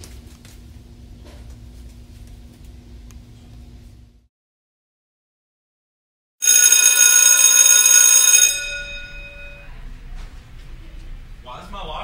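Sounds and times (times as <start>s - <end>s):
electric school bell ringing: 6.4s - 9.8s.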